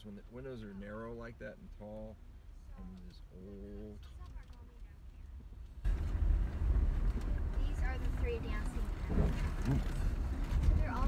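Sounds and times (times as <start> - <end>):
car road and engine rumble: 0.0 - 11.0
wind buffeting microphone: 5.4 - 11.0.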